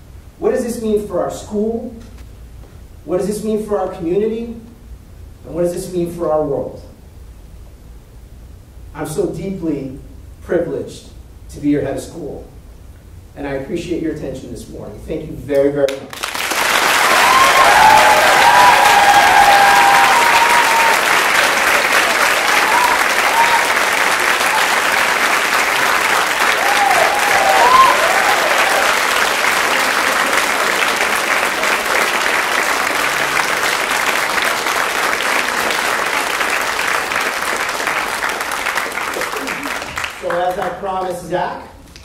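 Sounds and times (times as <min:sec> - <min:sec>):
audience applauding: 0:16.1 - 0:41.1
audience cheering: 0:16.2 - 0:40.6.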